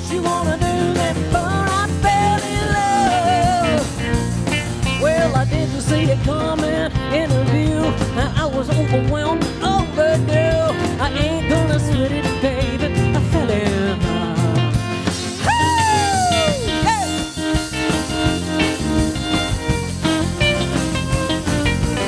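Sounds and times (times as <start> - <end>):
bass guitar: 0.0 - 22.0
drums: 0.0 - 22.0
electric guitar with bent notes: 0.0 - 22.0.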